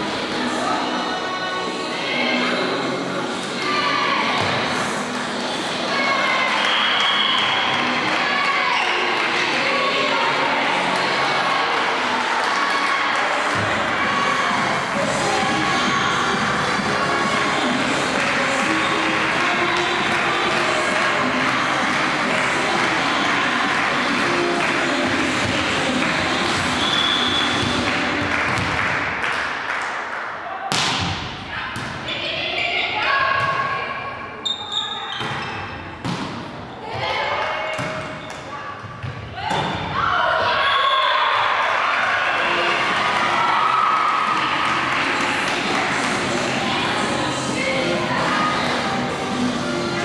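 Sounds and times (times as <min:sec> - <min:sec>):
voices in a large hall: 0:00.0 - 0:50.0
music playing: 0:13.5 - 0:28.6, 0:42.2 - 0:50.0
volleyball being hit: 0:30.7 - 0:32.0.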